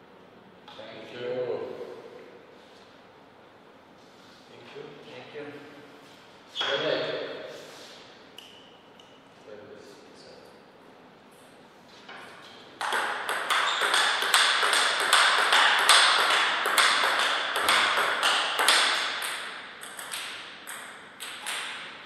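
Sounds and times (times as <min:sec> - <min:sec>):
ball bouncing on table: 0:12.8 - 0:21.9
ball clicking on table tennis paddles: 0:12.8 - 0:22.0.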